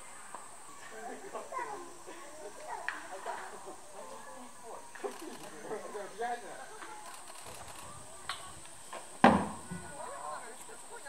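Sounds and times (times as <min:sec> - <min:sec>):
plastic tub thumping on ground: 0:09.2 - 0:09.8.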